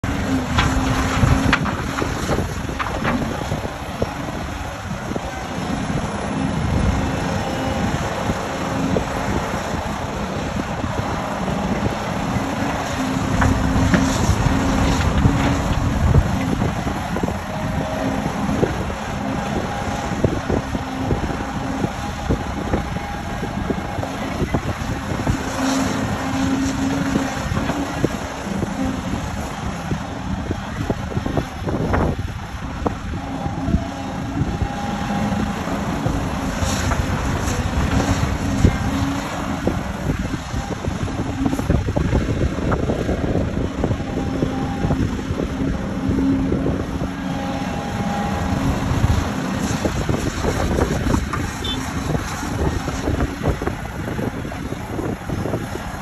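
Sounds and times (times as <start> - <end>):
excavator engine and hydraulics: 0.0 - 56.0.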